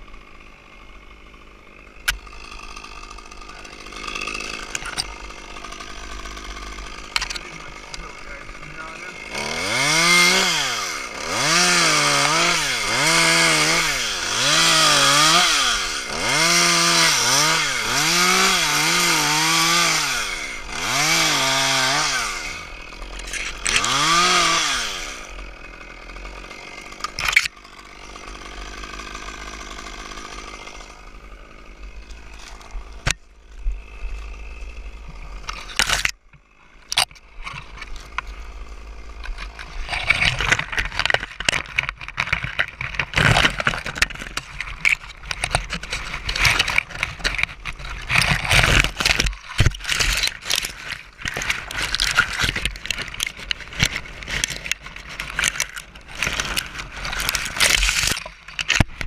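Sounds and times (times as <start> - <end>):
chainsaw revving: 0.0 - 59.0.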